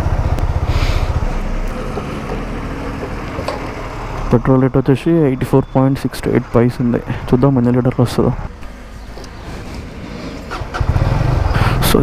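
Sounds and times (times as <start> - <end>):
motorcycle engine starting and idling: 0.0 - 5.1, 8.0 - 12.0.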